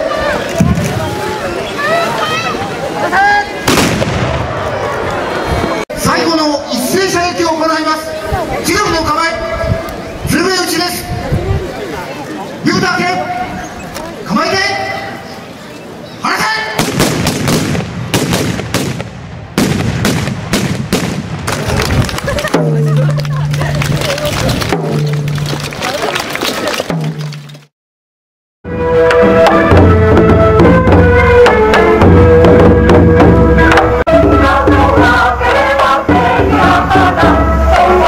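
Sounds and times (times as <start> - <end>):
gunshot: 3.7 - 4.7, 16.8 - 21.8
man shouting: 16.2 - 16.8.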